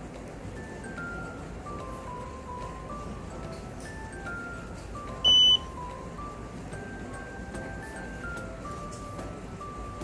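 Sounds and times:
soft background music: 0:00.0 - 0:10.0
high electronic beep: 0:05.3 - 0:05.7.

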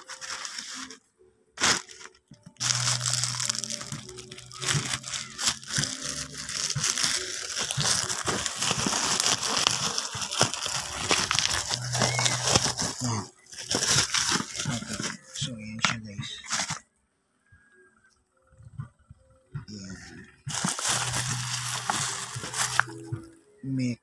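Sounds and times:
plastic pouch crumpling and tearing: 0:00.0 - 0:01.0, 0:01.6 - 0:15.4, 0:16.4 - 0:16.8, 0:20.5 - 0:23.1.

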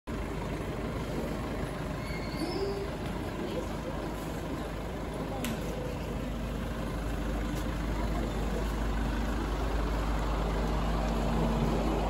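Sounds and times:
street noise: 0:00.1 - 0:12.0.

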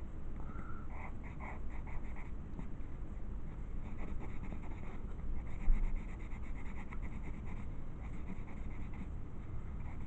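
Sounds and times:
pen scratching on paper: 0:03.8 - 0:09.1.

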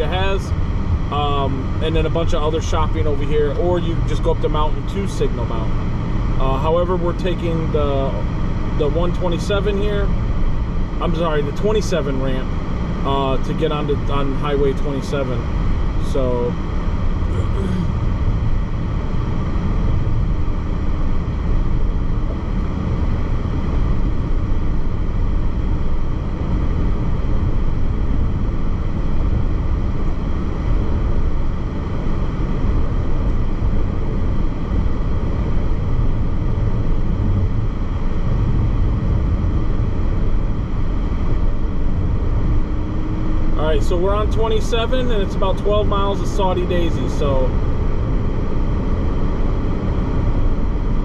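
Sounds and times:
car engine hum: 0:00.0 - 0:51.0
road and tyre noise: 0:00.0 - 0:51.0.

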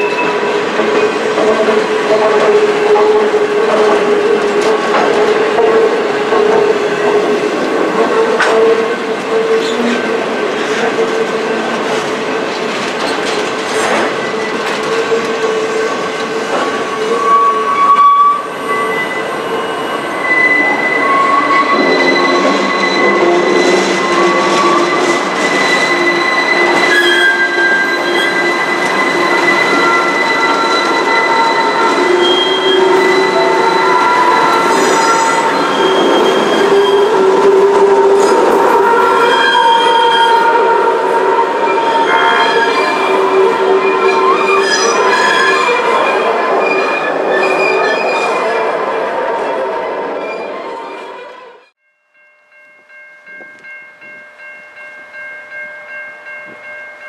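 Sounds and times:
steel wheels squealing: 0:13.0 - 0:40.5, 0:41.4 - 0:48.4.

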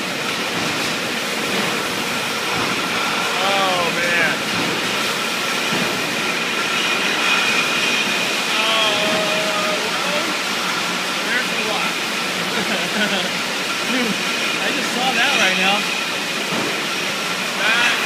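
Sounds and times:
bottling line machinery din: 0:00.0 - 0:18.0.

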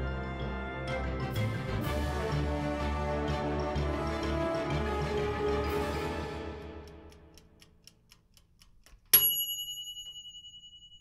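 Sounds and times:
background music: 0:00.0 - 0:07.7
light ticking: 0:06.6 - 0:09.4
bright bell ding: 0:09.2 - 0:11.0.

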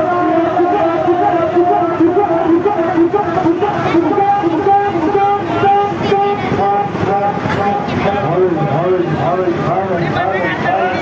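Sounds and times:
crowd noise: 0:00.0 - 0:11.0
reedy melody: 0:00.0 - 0:11.0.

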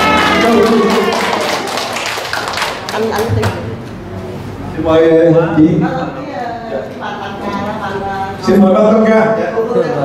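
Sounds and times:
people clapping: 0:00.0 - 0:03.8.

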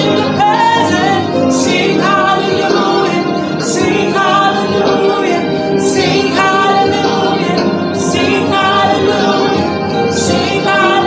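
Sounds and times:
woman singing gospel song: 0:00.0 - 0:11.0.

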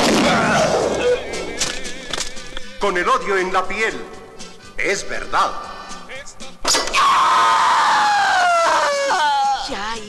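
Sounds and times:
man screaming: 0:06.7 - 0:09.6.

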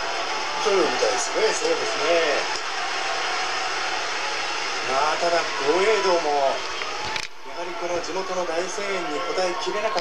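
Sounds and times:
crowd voices and cheering: 0:00.0 - 0:10.0.

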